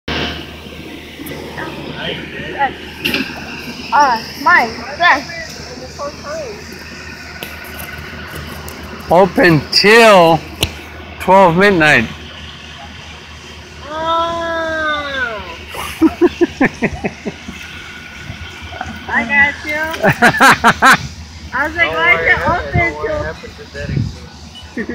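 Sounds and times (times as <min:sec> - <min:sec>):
steady low hum: 0:00.1 - 0:24.9
person laughing: 0:15.6 - 0:17.6, 0:20.0 - 0:21.1.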